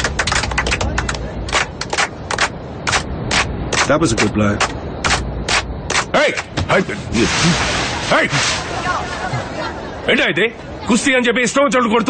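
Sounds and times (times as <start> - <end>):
sharp percussive strikes: 2.0 - 6.6
faint voices: 6.1 - 11.1.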